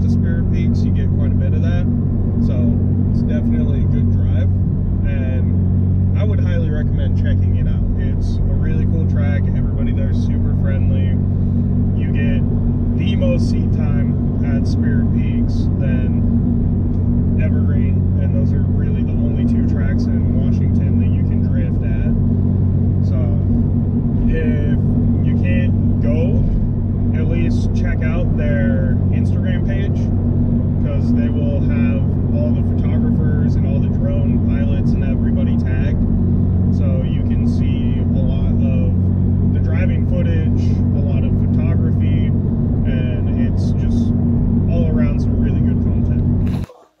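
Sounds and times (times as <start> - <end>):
man talking: 0.0 - 11.3, 11.9 - 16.3, 17.4 - 22.2, 23.0 - 23.6, 24.2 - 30.1, 30.8 - 36.0, 36.7 - 44.1, 44.7 - 46.9
car cabin drone at highway speed: 0.0 - 47.0.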